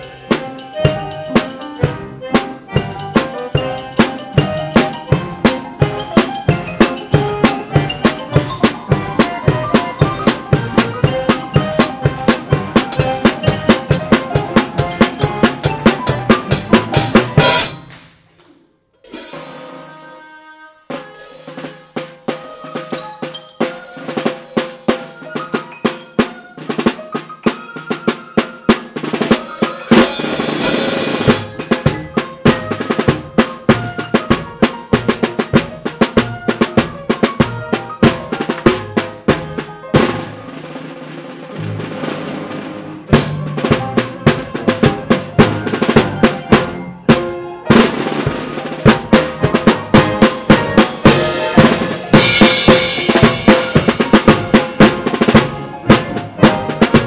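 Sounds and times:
drum kit playing: 0.0s - 18.4s, 19.0s - 57.0s
band with piano: 0.0s - 57.0s.

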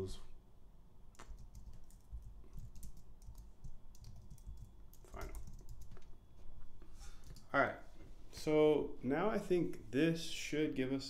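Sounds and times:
computer keyboard typing: 1.2s - 6.1s, 7.2s - 7.5s.

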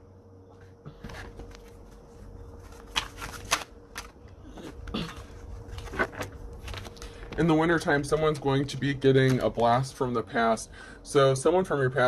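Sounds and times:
cards being shuffled: 1.0s - 9.9s.

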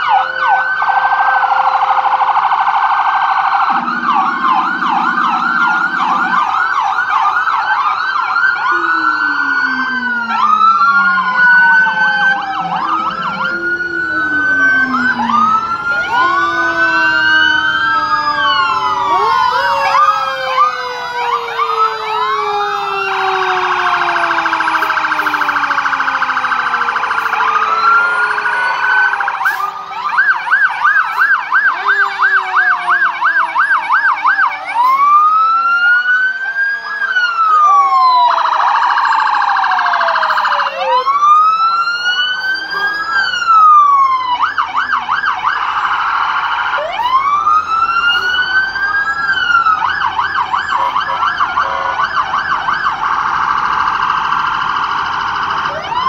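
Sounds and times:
fire truck sirens wailing: 0.0s - 56.0s.

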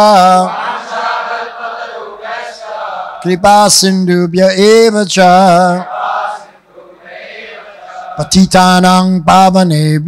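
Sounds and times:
congregation chanting: 0.0s - 3.8s, 5.2s - 8.4s.

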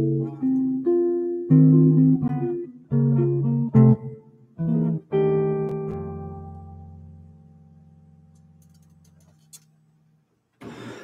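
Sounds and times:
jazz guitar notes ringing: 0.0s - 9.2s.

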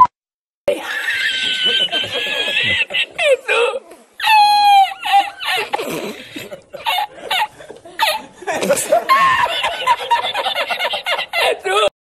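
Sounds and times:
man laughing hard: 0.7s - 11.9s.

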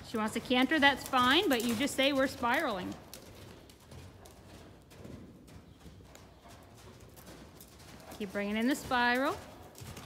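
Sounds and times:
horse hoofbeats on sand: 0.0s - 10.0s.

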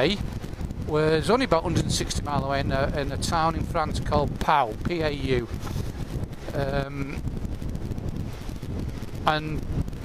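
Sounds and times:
motorcycle engine and road noise: 0.0s - 10.0s
wind buffeting microphone: 0.0s - 10.0s.

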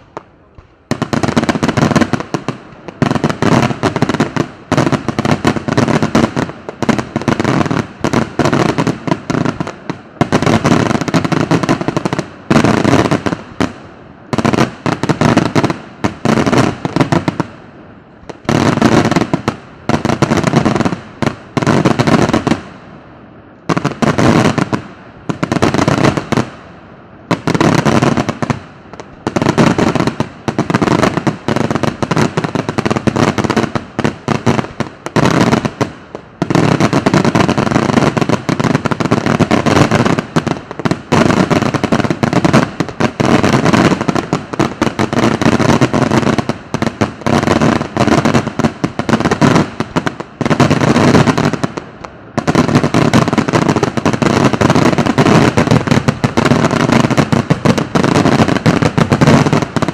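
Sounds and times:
fireworks bursts and bangs: 0.0s - 59.9s.

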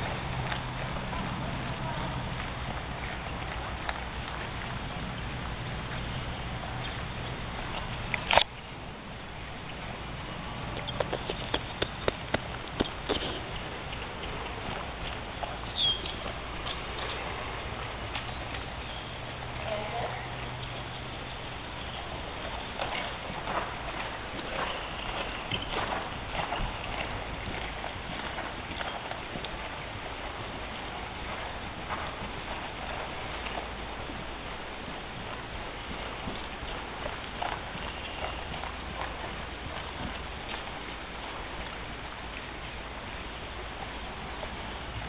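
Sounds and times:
steady background noise: 0.0s - 45.0s
muffled hoofbeats on dirt: 10.0s - 45.0s.

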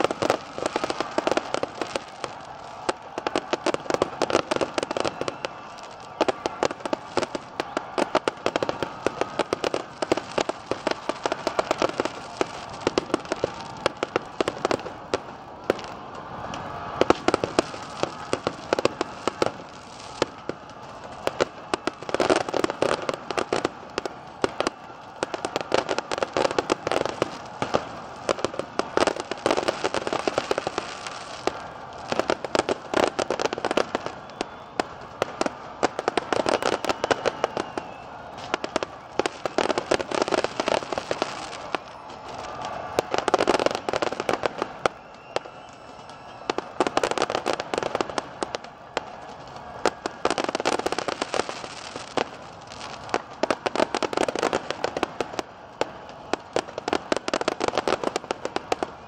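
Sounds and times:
fireworks bangs and crackles: 0.0s - 59.0s.

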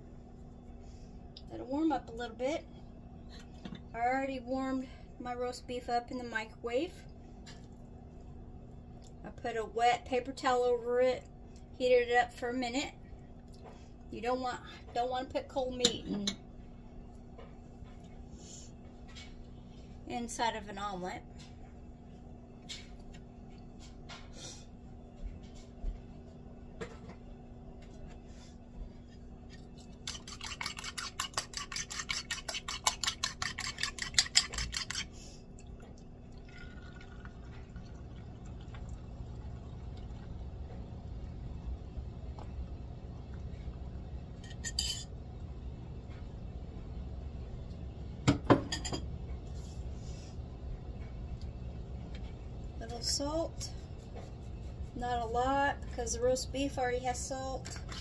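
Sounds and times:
faint steady hum: 0.0s - 58.0s
fork beating eggs in a bowl: 29.1s - 35.2s, 52.9s - 56.2s.

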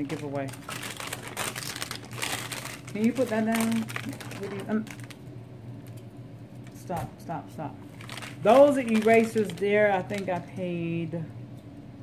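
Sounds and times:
plastic packaging crinkling: 0.0s - 6.0s, 7.8s - 10.7s.

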